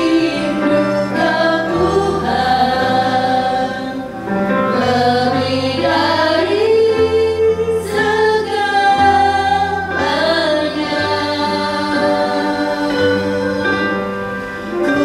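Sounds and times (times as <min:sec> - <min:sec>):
musical backing with bass: 0:00.0 - 0:15.0
women singing into microphones: 0:00.0 - 0:15.0.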